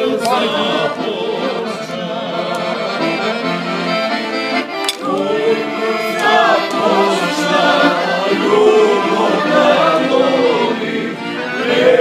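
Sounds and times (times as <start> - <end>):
accordion playing a tune: 0.0 - 12.0.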